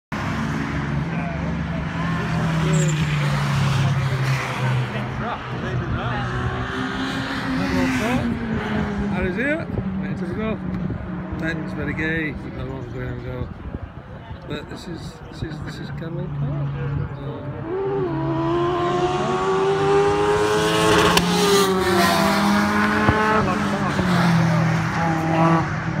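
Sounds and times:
faint voices: 0.9 - 21.9
car engine drone: 15.7 - 26.0.

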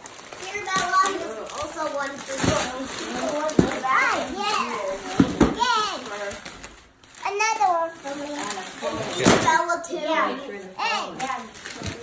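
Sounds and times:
children talking: 0.4 - 12.0.

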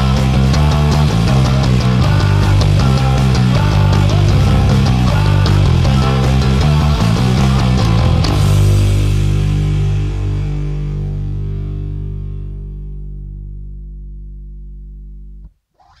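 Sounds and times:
distorted guitar and bass chord: 0.0 - 15.5.

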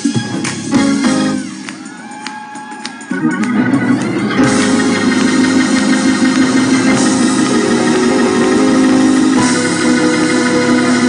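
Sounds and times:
gospel organ music: 0.0 - 11.0.

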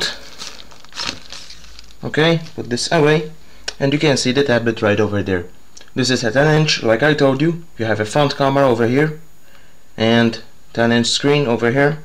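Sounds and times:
plastic sheet crinkling: 0.0 - 2.8.

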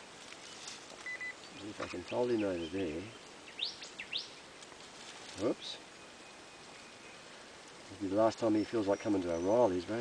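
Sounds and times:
bird chirping: 0.4 - 4.6, 5.4 - 10.0.

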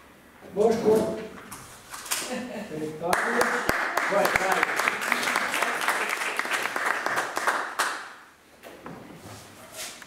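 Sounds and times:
audience applauding: 3.1 - 8.2.

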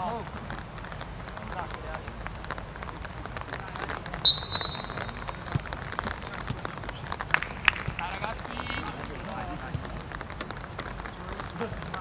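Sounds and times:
referee's whistle blast: 4.2 - 5.2.

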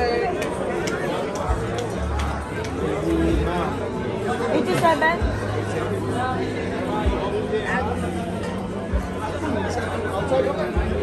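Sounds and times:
chatter of many diners: 0.0 - 11.0.

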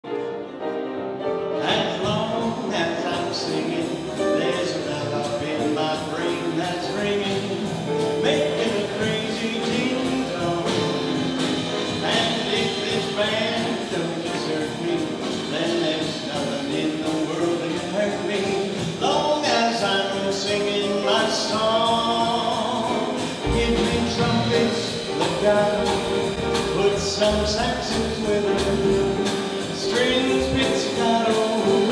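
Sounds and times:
piano: 0.0 - 31.9
guitar: 0.1 - 31.9
drum kit swing beat: 1.4 - 31.9
upright bass: 1.6 - 31.9.

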